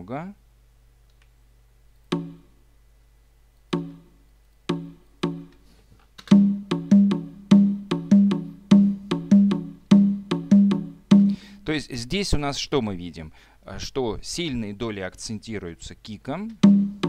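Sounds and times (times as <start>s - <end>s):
conga drum hits: 2.1s - 2.4s, 3.7s - 4.1s, 4.7s - 5.5s, 6.3s - 11.5s, 16.6s - 17.0s.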